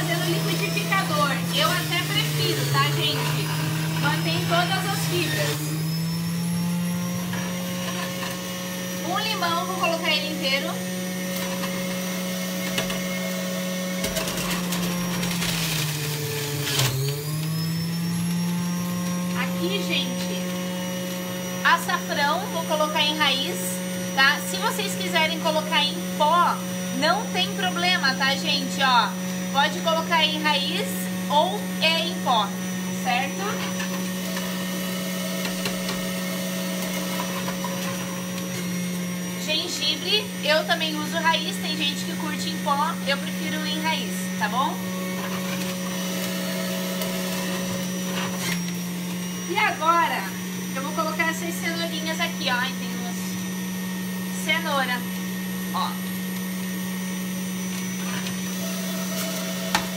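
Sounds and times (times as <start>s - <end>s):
juicer motor running: 0.0s - 59.9s
lemon grinding in juicer: 0.0s - 59.9s.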